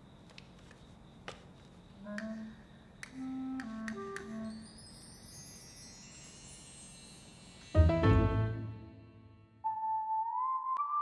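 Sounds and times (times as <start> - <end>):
high chime-like tones: 4.6 - 7.9.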